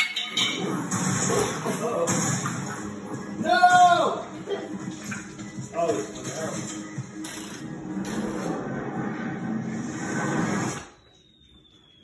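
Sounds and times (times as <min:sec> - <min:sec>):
film music and sound effects: 0:00.0 - 0:12.0.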